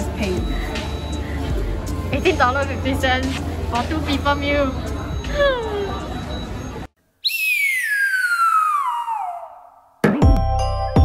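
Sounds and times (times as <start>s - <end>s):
descending whistle sound effect: 7.2s - 9.9s.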